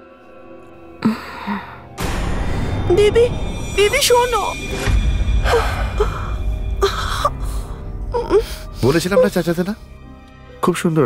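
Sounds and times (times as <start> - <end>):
background music: 0.0 - 11.0
man speaking: 8.8 - 9.8.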